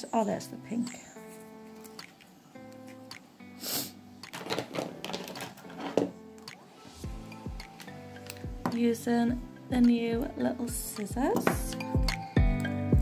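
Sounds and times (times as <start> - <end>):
background music: 0.0 - 13.0
foil crinkling and rustling: 4.4 - 5.9.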